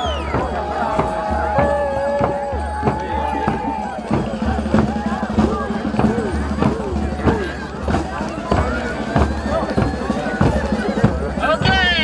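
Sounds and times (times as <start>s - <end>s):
crowd shouting and whooping: 0.0s - 12.0s
steady drumbeat: 0.0s - 12.0s.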